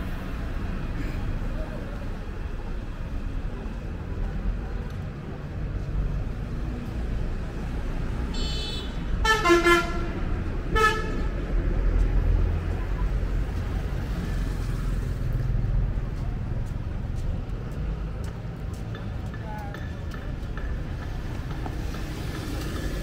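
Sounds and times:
road traffic rumble: 0.0s - 23.0s
vehicle horn toots: 8.3s - 10.1s, 10.7s - 11.2s.

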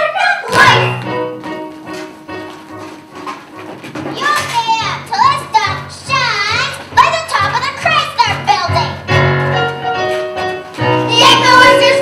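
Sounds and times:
girls singing: 0.0s - 1.0s, 11.0s - 12.0s
girl singing amplified: 0.0s - 1.1s, 11.0s - 12.0s
musical theatre backing track: 0.0s - 12.0s.

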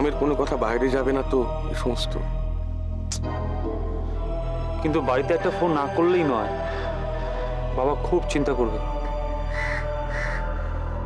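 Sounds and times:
background music with low drone: 0.0s - 11.0s
short bird calls: 9.5s - 10.5s.

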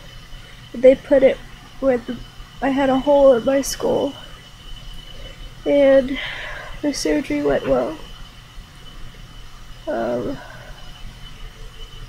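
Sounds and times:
faint high whine: 0.0s - 12.0s
low steady hum: 0.0s - 12.0s.

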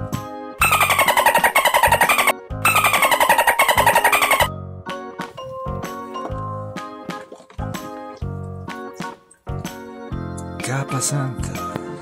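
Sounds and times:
light background music: 0.0s - 12.0s
dolphin clicking chatter: 0.6s - 4.5s.

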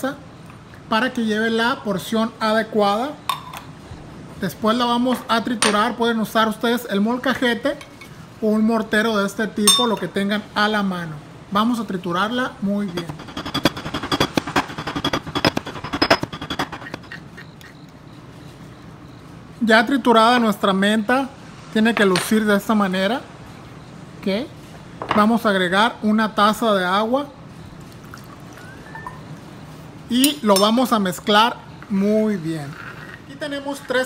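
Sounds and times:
mortar and pestle pounding: 12.9s - 17.8s.

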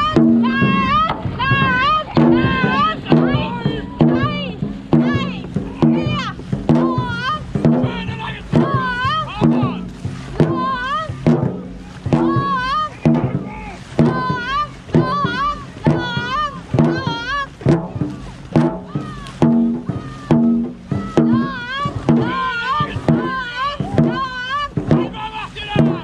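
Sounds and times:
drum beaten in rhythm: 0.0s - 26.0s
paddles splashing water: 0.0s - 26.0s.

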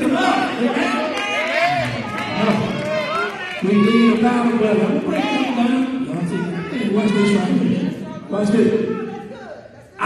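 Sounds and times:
man preaching through microphone: 0.0s - 1.2s, 2.2s - 2.8s, 3.6s - 10.0s.

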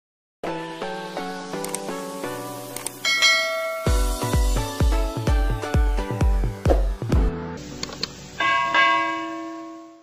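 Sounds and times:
bell-like chime: 3.0s - 4.4s, 8.4s - 10.0s.

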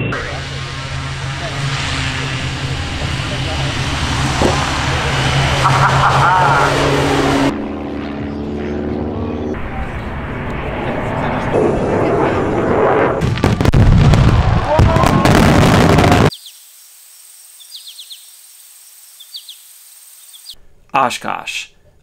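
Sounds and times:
steady engine hum: 0.0s - 13.2s
turboprop engine and propeller whine: 0.0s - 13.2s.

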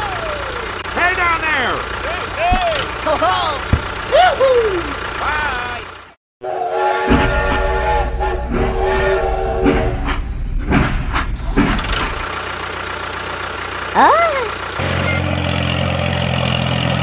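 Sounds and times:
low motor hum: 0.0s - 6.2s, 7.1s - 15.6s
locomotive chuffing: 0.0s - 17.0s
toy train whistle: 6.4s - 9.8s.

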